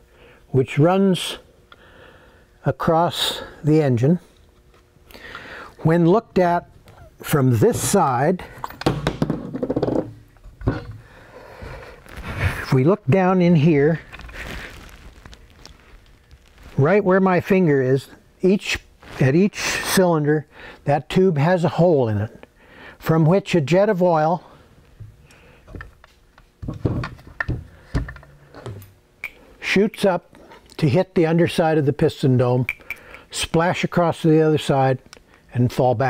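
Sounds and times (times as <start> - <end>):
engine block thumping on wooden bench: 8.7 - 10.9.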